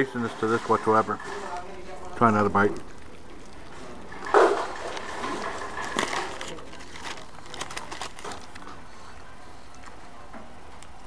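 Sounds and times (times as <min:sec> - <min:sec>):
paper wrapper rustling: 0:00.0 - 0:09.2
chewing food: 0:00.7 - 0:10.1.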